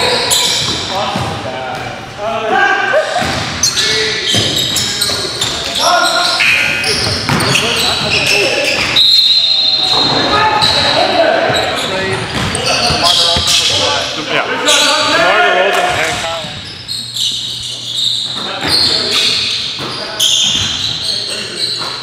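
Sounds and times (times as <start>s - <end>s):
players shouting and chatter: 0.0s - 22.0s
basketball bouncing on hardwood: 7.1s - 7.6s.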